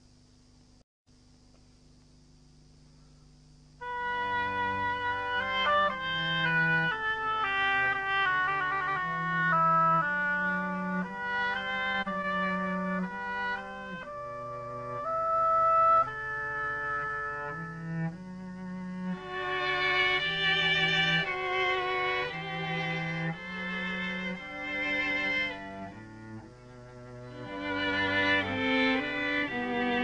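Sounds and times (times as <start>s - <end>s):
chamber ensemble playing: 3.8s - 30.0s.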